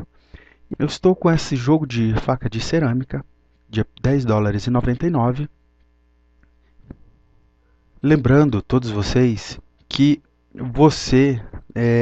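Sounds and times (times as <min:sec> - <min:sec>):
faint mains hum: 0:00.0 - 0:12.0.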